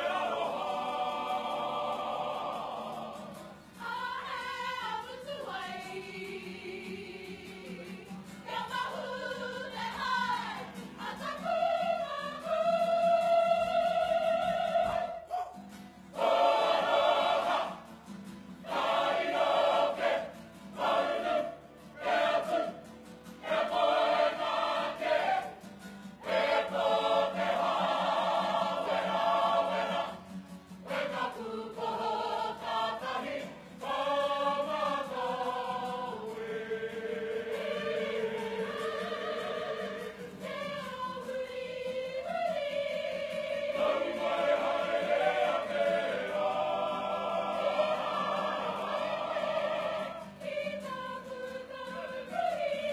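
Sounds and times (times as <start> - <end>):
choir of men and women singing: 0.0 - 52.9.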